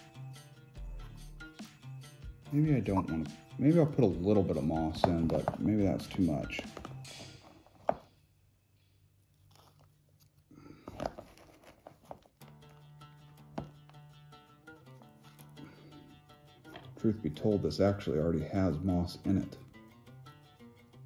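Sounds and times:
quiet background music: 0.0 - 21.0.

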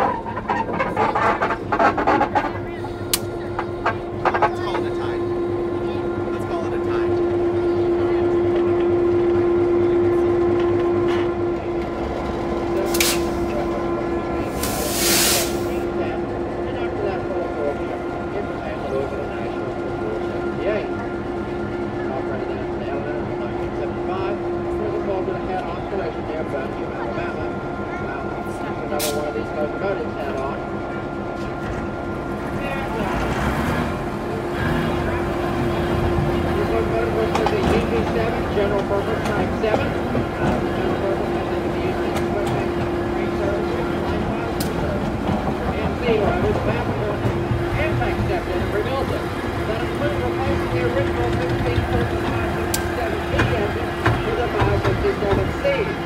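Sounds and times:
locomotive engine drone: 0.0 - 56.0
short hisses: 14.6 - 15.8.

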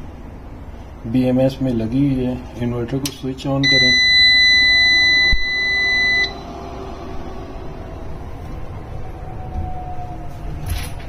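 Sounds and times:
steady hum: 0.0 - 10.7
inverter buzzer beep: 3.6 - 6.5.

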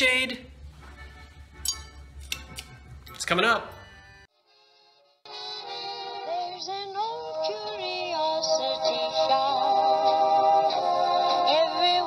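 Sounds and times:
faint background music: 0.0 - 12.0.

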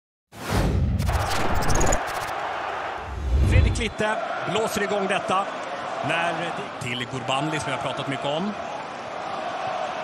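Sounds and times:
stadium crowd hiss: 2.2 - 10.0.

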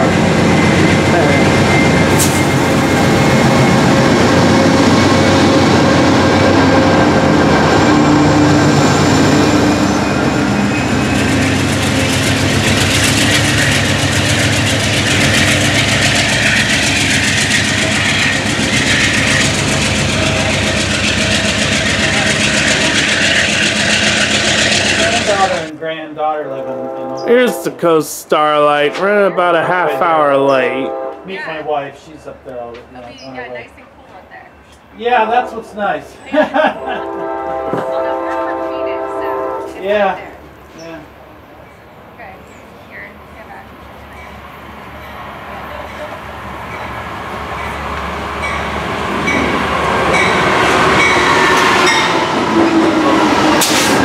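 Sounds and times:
diesel locomotive running: 0.0 - 31.4, 33.6 - 54.0
rail and wheel noise: 0.0 - 54.0.

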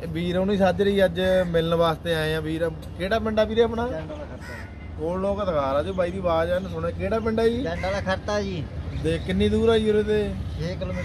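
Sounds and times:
men talking outdoors: 0.0 - 11.0.

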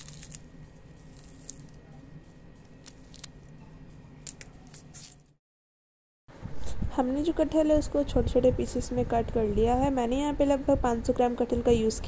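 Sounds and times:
steady low hum: 0.0 - 5.4, 6.3 - 12.0.

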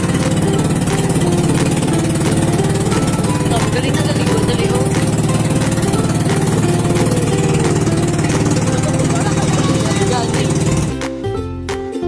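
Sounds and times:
boat engine chugging: 0.0 - 11.1.

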